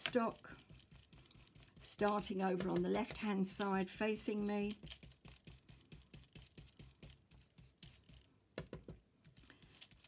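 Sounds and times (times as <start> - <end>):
brush strokes on stencil: 0.0 - 2.3, 4.7 - 8.3, 9.3 - 10.0
brush taps: 0.0 - 3.3, 4.7 - 9.0.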